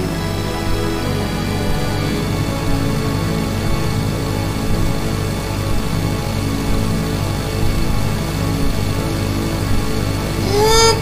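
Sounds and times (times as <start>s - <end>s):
slow instrumental worship music: 0.0s - 11.0s.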